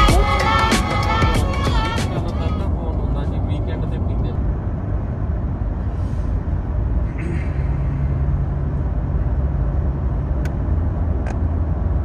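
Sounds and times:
tyre and engine rumble in car cabin: 0.0 - 12.0.

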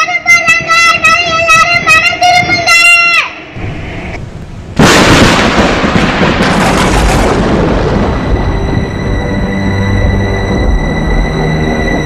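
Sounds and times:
child calling out: 0.0 - 3.5
loud boom rumbling: 4.8 - 10.8.

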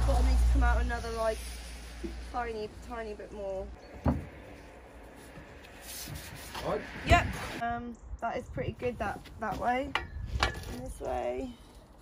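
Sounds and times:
soft rubbing scrape: 0.4 - 7.6.

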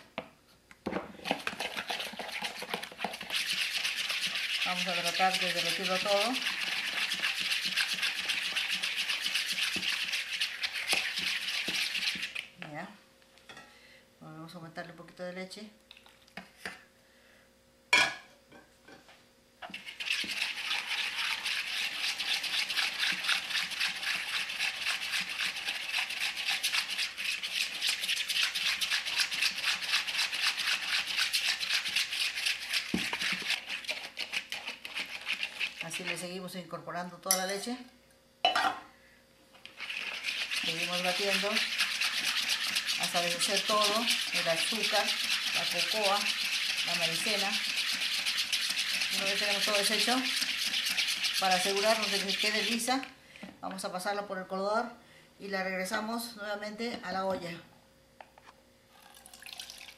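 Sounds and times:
whisk beating in plastic bowl: 1.0 - 12.6, 19.6 - 36.6, 39.6 - 53.2.

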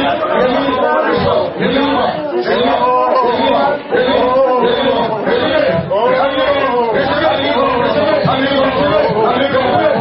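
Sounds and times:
many voices praying aloud: 0.0 - 10.0.

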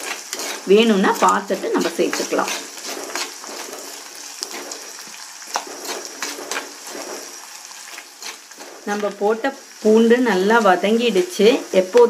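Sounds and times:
spoon scraping a clay pot: 0.0 - 9.2
food sizzling in oil: 0.0 - 12.0.

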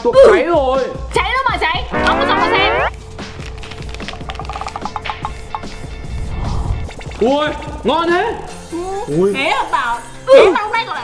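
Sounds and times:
background music: 0.0 - 11.0
plastic packet crinkling: 3.1 - 4.9.

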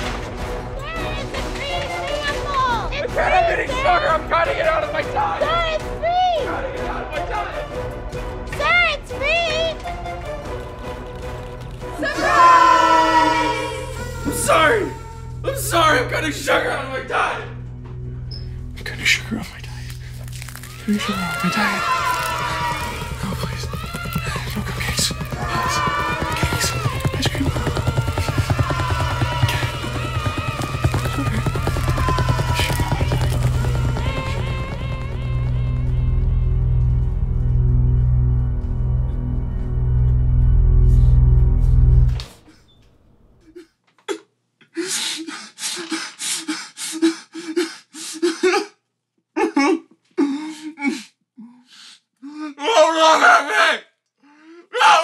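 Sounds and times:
dramatic music with driving beat: 17.5 - 42.2
man sobbing: 43.4 - 52.6
breathy gasp: 50.2 - 52.6, 54.2 - 54.7.

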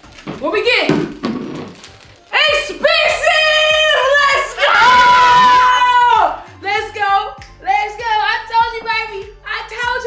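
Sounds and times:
woman shrieking: 2.8 - 6.4.

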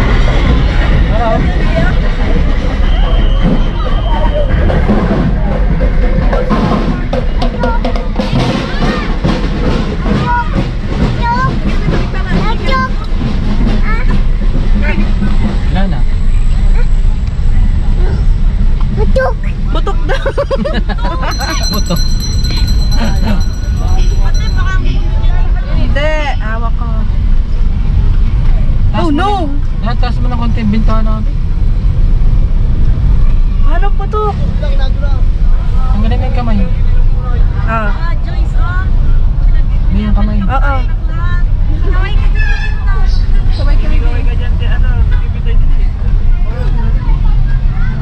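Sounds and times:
car engine and road noise: 0.0 - 48.0.

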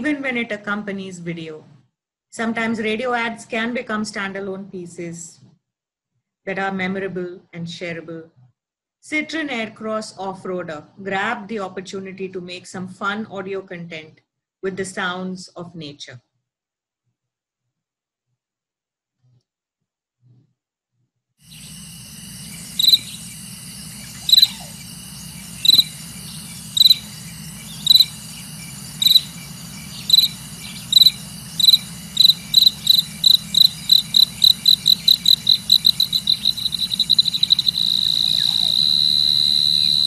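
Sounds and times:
cricket chirps: 21.4 - 40.0
steady background hum: 21.5 - 40.0.

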